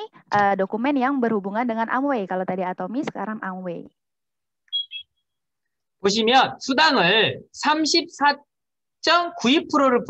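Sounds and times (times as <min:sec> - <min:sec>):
high-pitched electronic beeps: 0:04.7 - 0:05.2.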